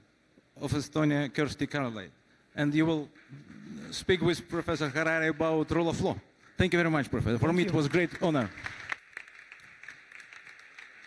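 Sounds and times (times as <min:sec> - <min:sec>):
faint applause: 0:07.8 - 0:11.0.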